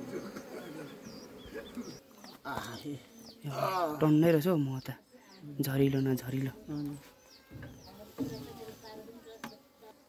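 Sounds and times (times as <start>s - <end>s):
birds chirping: 0.0s - 10.0s
honeybees buzzing: 0.0s - 10.0s.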